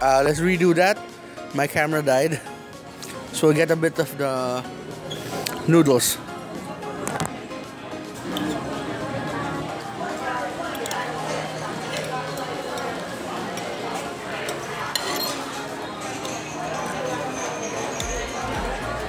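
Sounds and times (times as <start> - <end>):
restaurant background chatter: 0.0 - 19.0
cutlery scraping on a plate: 14.4 - 18.0.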